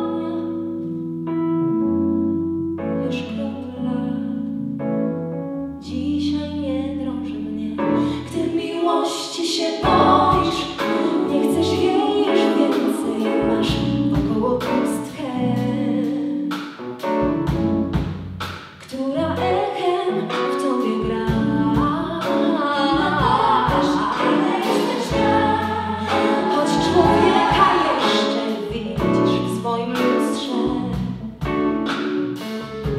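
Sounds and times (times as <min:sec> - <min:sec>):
woman singing lead: 0:00.0 - 0:00.8, 0:03.0 - 0:04.5, 0:05.8 - 0:16.6, 0:18.8 - 0:31.2
bass guitar: 0:00.0 - 0:08.6, 0:09.8 - 0:12.2, 0:13.4 - 0:19.6, 0:21.0 - 0:32.9
keyboards: 0:00.0 - 0:18.6, 0:19.2 - 0:32.9
backing singers: 0:08.2 - 0:14.9, 0:21.5 - 0:29.4
drums: 0:09.8 - 0:32.9.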